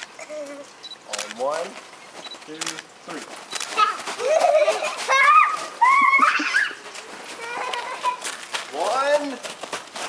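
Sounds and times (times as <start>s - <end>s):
children squealing: 4.2s - 8.3s.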